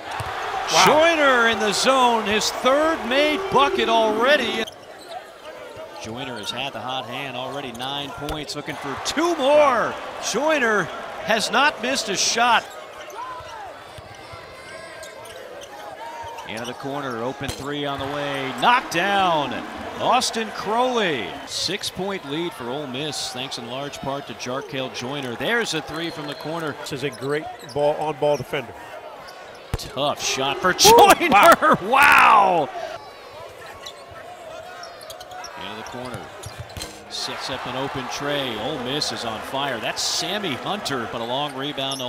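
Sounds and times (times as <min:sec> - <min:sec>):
crowd murmur: 0:00.0 - 0:04.7, 0:18.0 - 0:21.5, 0:30.2 - 0:33.0
distant voices: 0:00.2 - 0:04.6.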